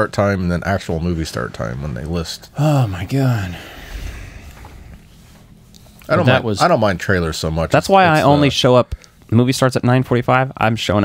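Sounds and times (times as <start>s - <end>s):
low hum: 2.4s - 6.2s.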